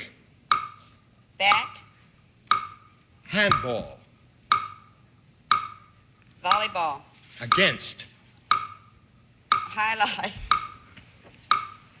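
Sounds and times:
countdown timer ticking: 0:00.4 - 0:06.8, 0:07.5 - 0:12.0.

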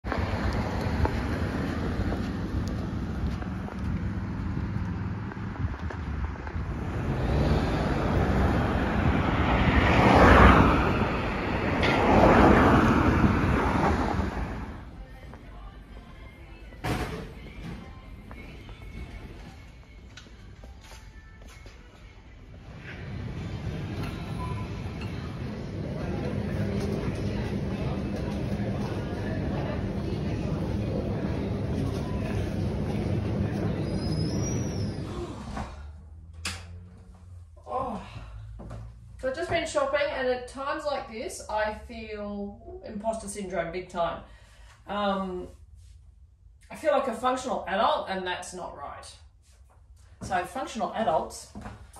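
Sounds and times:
cars passing close by: 0:00.0 - 0:15.2, 0:22.6 - 0:40.6
low rumble of shoppers handling goods: 0:00.1 - 0:09.3, 0:12.6 - 0:40.7.

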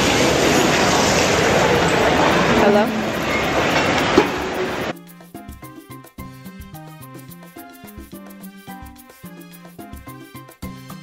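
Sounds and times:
indistinct voices: 0:00.0 - 0:04.9
busy dining room din: 0:00.0 - 0:05.9.

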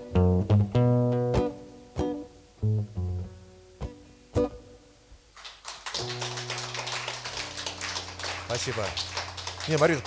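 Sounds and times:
audience applause: 0:05.4 - 0:10.0.

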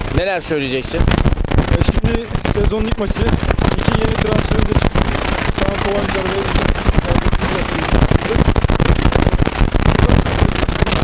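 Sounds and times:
wind buffeting microphone: 0:00.0 - 0:11.0
man speaking: 0:01.7 - 0:04.9, 0:05.6 - 0:08.4.

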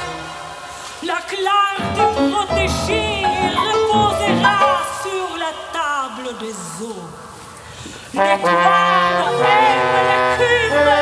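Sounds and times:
chamber ensemble playing chords: 0:01.8 - 0:05.2.

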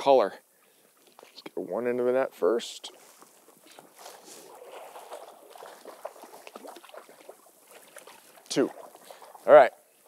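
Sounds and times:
water splashing around net: 0:02.9 - 0:09.6
fish thrashing at surface: 0:03.2 - 0:09.4.

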